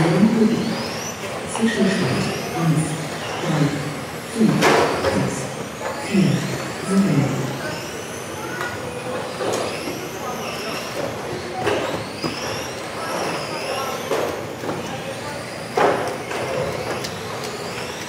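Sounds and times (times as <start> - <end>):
electric toy car motors whining: 0.0 - 18.0.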